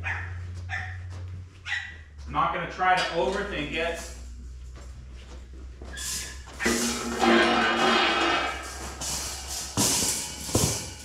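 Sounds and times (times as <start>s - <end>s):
metal wire panels clattering: 6.0s - 11.0s.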